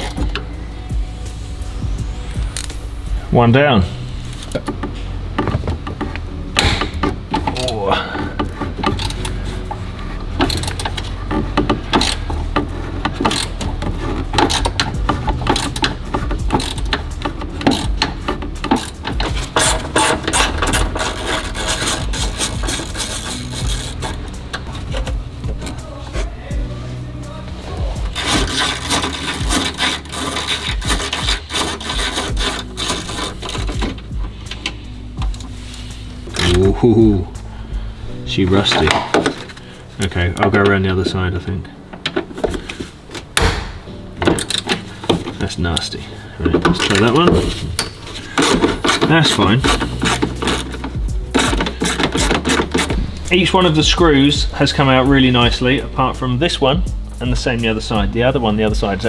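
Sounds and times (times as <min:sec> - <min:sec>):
tool knocking and scraping: 0:00.0 - 0:00.5, 0:04.4 - 0:26.7, 0:27.8 - 0:37.0, 0:38.5 - 0:41.2, 0:41.9 - 0:55.8
socket ratchet clicking: 0:10.4 - 0:25.2, 0:47.8 - 0:53.3.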